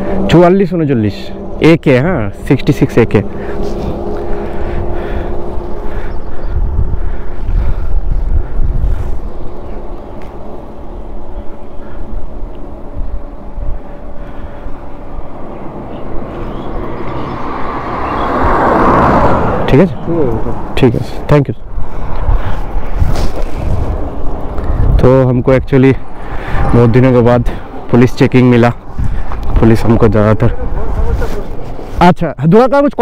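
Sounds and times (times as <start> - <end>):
car passing: 0.0 - 32.0
traffic engine hum: 0.0 - 33.0
wind rumble on microphone: 2.2 - 32.1.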